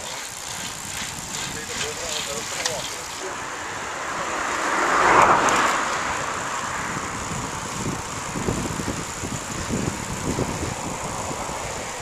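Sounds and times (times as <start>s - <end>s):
bicycle tyres on asphalt: 0.0s - 12.0s
wind on microphone: 0.5s - 2.6s, 5.0s - 12.0s.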